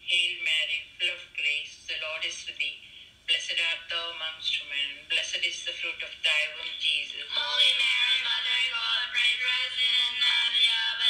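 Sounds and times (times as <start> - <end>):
person singing: 7.2 - 11.0.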